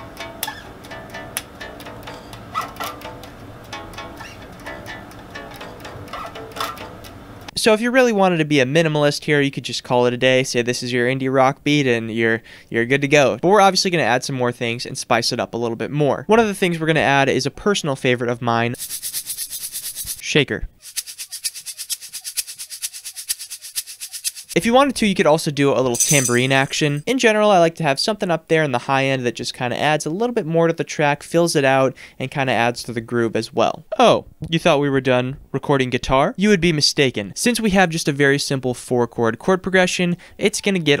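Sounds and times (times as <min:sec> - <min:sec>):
tube shaker shaken: 0:18.8 - 0:20.2, 0:20.8 - 0:24.6.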